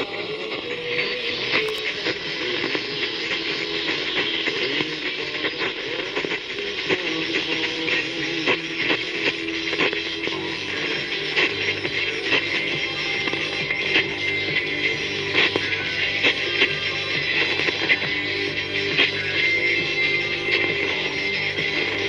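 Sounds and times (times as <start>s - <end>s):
faint radio music: 0.0s - 22.0s
radio static crackling: 0.0s - 22.0s.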